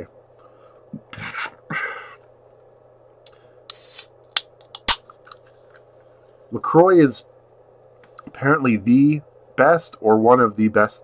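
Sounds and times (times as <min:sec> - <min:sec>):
can opening hiss: 0:03.7 - 0:05.0.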